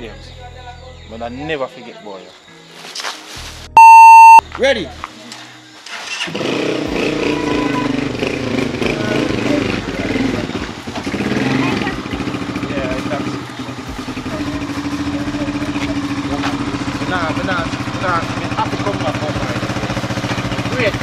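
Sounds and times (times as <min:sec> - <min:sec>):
motorcycle engine idling: 0:08.4 - 0:21.0.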